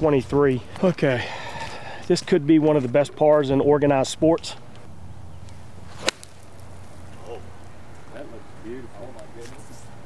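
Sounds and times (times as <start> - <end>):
golf club striking ball: 5.9 - 6.6.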